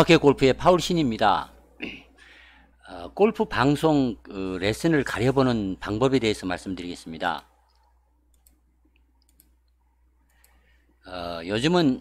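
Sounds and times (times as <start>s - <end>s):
faint clicks: 7.7s - 10.6s.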